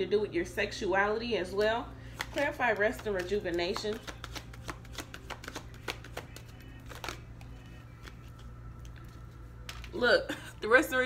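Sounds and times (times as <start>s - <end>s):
cards being shuffled: 2.0s - 10.0s.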